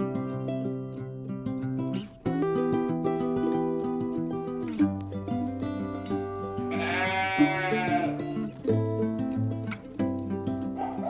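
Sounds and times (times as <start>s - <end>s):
guitar music: 0.0s - 11.0s
sheep bleating: 6.7s - 8.5s.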